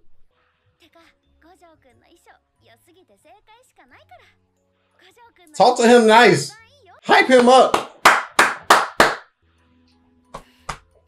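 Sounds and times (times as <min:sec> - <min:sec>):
man clapping hands: 0:05.6 - 0:06.5, 0:07.1 - 0:09.2, 0:10.4 - 0:10.8.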